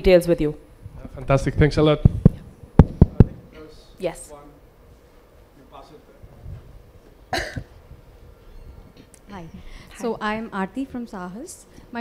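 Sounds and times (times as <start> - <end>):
person coughing: 7.3 - 7.8.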